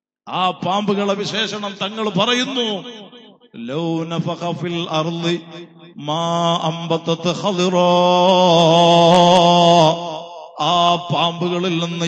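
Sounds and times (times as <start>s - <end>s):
man chanting: 0.3s - 2.9s, 3.6s - 12.0s.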